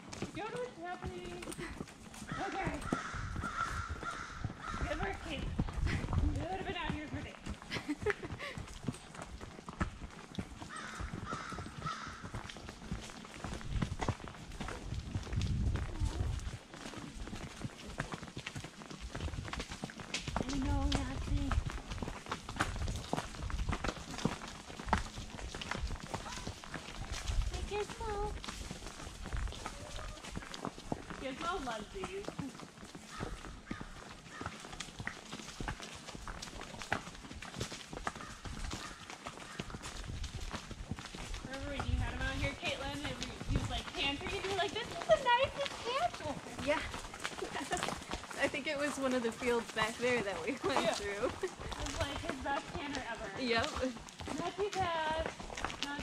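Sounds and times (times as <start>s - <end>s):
horse hoofbeats on dirt trail: 0.0s - 56.0s.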